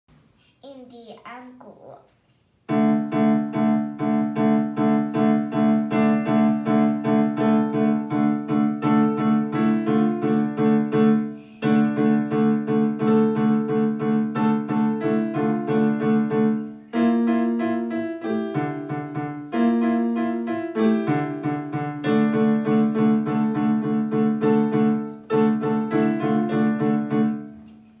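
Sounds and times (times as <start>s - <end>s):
digital piano piece: 2.7s - 28.0s.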